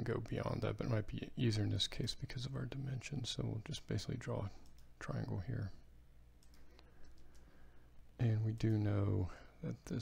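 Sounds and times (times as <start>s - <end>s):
faint computer mouse click: 6.4s - 7.5s.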